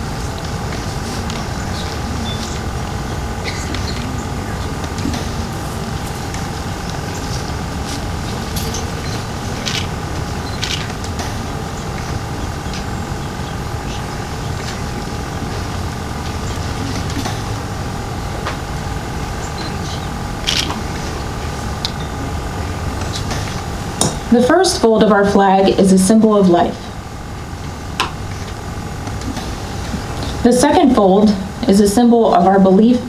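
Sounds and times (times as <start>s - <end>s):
mechanical hum with low rumble: 0.0s - 33.0s.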